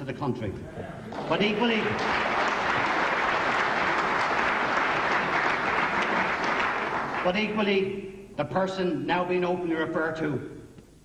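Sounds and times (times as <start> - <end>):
large audience applauding: 1.1 - 7.7.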